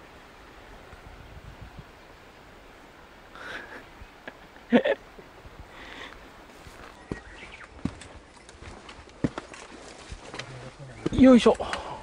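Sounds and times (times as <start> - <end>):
boots stepping on stone: 6.5 - 11.8.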